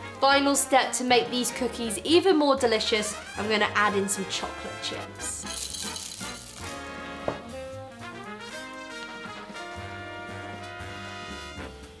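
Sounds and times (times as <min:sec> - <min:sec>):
upbeat swing music with brass: 0:00.0 - 0:12.0.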